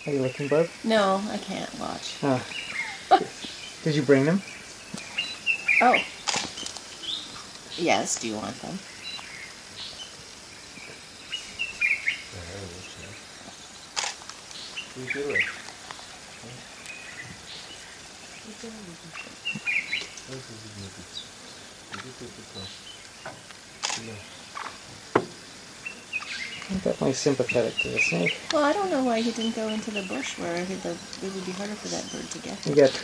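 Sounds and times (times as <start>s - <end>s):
birds chirping: 0.0s - 33.0s
sharp clicks: 6.2s - 6.9s, 14.0s - 14.6s, 23.4s - 24.8s
faint low voices: 12.3s - 13.2s, 15.0s - 15.5s, 16.4s - 16.7s, 20.2s - 21.2s, 21.9s - 22.7s, 23.9s - 24.2s, 26.7s - 33.0s.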